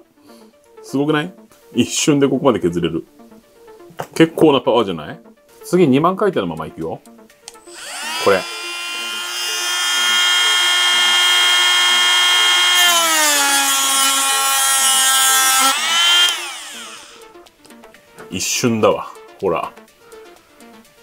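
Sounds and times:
rotary tool whining: 0:07.6 - 0:17.2.

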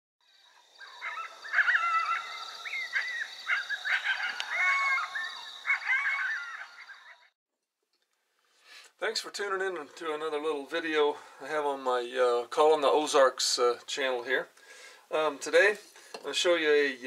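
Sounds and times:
coyotes yipping and howling: 0:00.3 - 0:07.3.

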